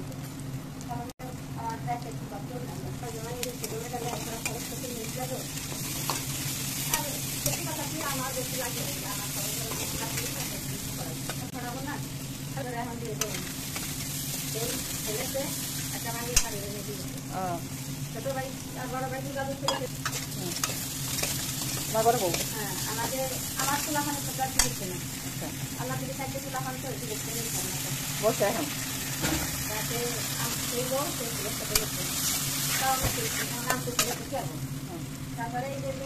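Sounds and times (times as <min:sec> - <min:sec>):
onions sizzling in oil: 0:00.0 - 0:36.0.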